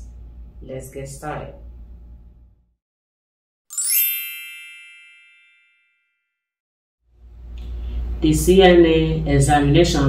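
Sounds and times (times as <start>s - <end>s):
bright bell-like chime: 3.7s - 6.4s.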